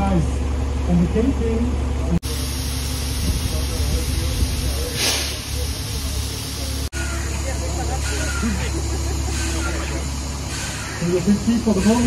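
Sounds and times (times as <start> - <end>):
diesel engine rumbling: 0.0 - 12.0
compressed air hiss: 2.2 - 6.9.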